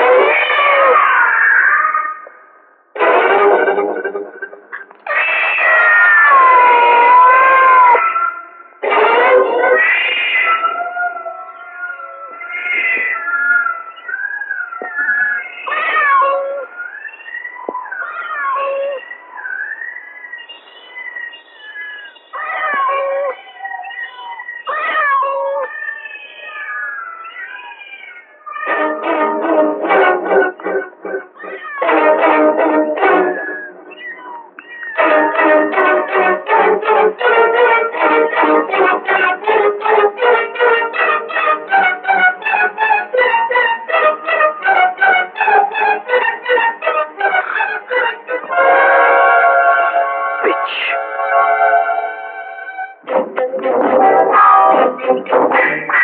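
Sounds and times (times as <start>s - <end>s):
wailing sliding tones: 3.0s - 8.1s, 28.6s - 56.0s.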